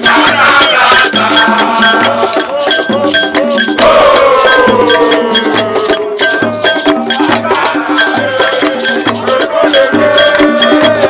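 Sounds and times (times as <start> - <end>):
hand drums beating: 0.0 - 11.0
voices singing along: 0.0 - 11.0.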